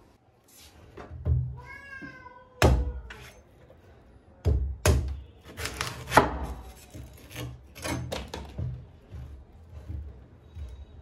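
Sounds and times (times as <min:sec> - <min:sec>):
cat meowing: 0:01.5 - 0:03.3
cleaver chopping on wooden board: 0:04.4 - 0:08.6.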